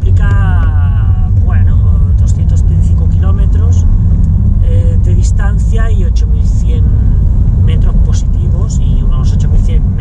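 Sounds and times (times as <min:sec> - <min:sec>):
car engine and tyres rumbling: 0:00.0 - 0:10.0
driver's voice: 0:00.0 - 0:10.0.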